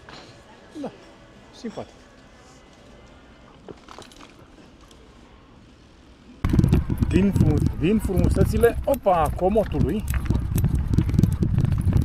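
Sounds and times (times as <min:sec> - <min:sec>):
wind rumble on microphone: 0:06.4 - 0:12.0
man talking: 0:07.1 - 0:10.0.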